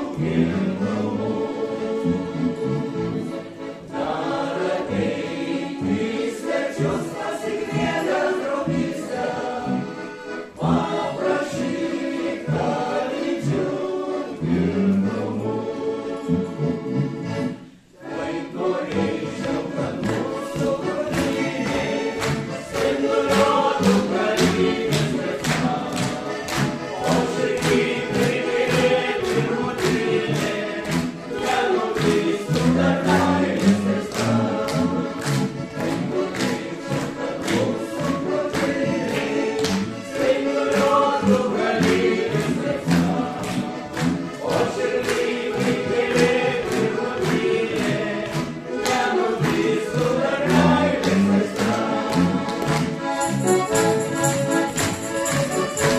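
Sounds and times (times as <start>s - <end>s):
accordions playing: 0.0s - 55.9s
mixed choir singing: 0.0s - 55.9s
tambourine struck on the beat: 53.2s - 55.9s.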